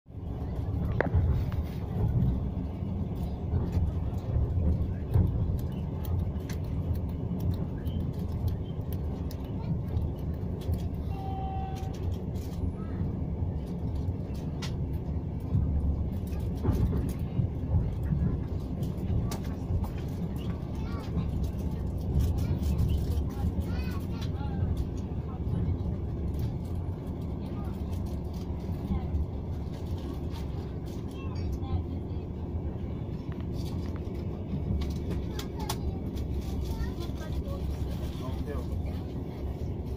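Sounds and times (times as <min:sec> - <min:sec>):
train rumble inside carriage: 0:00.1 - 0:39.9.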